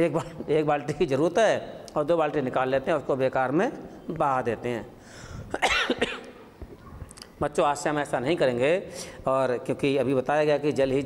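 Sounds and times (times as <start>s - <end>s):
man coughing: 5.5s - 6.3s.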